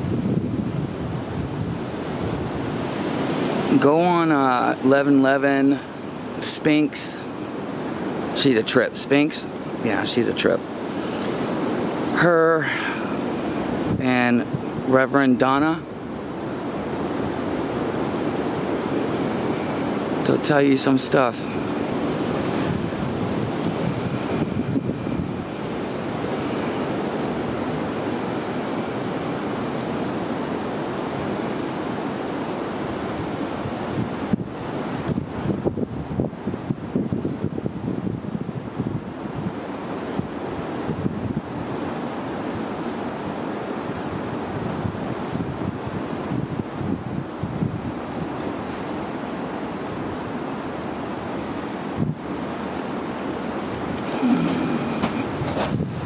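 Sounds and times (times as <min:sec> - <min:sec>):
wind buffeting microphone: 0:00.0 - 0:56.0
wind rushing through trees: 0:00.0 - 0:56.0.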